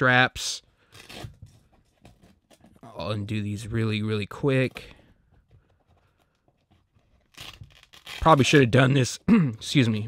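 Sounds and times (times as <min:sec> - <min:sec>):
hook-and-loop strap ripping open: 0:00.8 - 0:01.5, 0:07.0 - 0:08.6.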